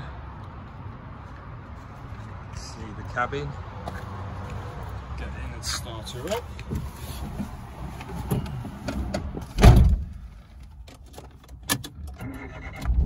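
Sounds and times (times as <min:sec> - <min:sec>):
heavy thump: 0:09.5 - 0:10.2
car engine starting: 0:11.0 - 0:13.0.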